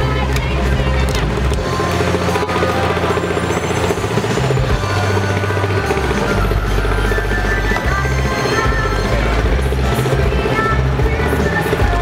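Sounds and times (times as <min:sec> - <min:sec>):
upbeat dance music: 0:00.0 - 0:06.5.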